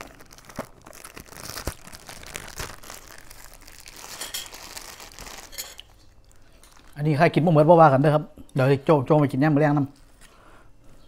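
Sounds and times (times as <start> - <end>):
plastic bag crinkling: 0.0 - 7.2.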